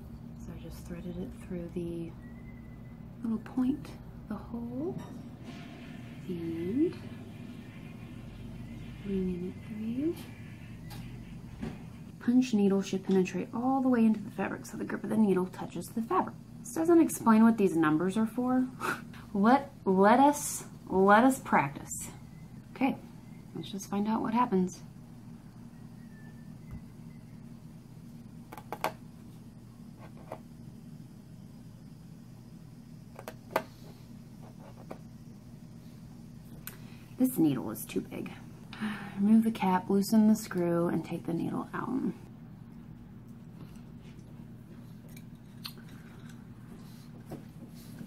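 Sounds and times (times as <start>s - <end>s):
low room hum: 0.0s - 48.0s.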